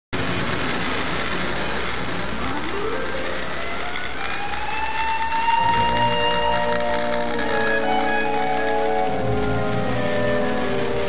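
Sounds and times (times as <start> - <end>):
toy train motor whine: 0.2 - 11.0
toy train wheels rattling: 0.4 - 11.0
music: 2.5 - 11.0.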